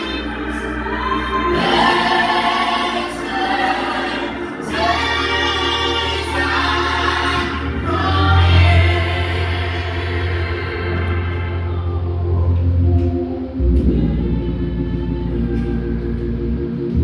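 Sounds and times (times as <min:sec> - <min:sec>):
choir singing gospel: 0:00.0 - 0:17.0
low bass notes: 0:00.0 - 0:17.0.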